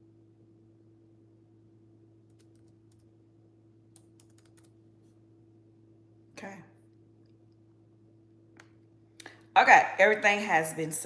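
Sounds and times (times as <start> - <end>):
low steady hum: 0.0 - 11.0
light typing on keyboard: 2.3 - 3.1, 3.9 - 4.8.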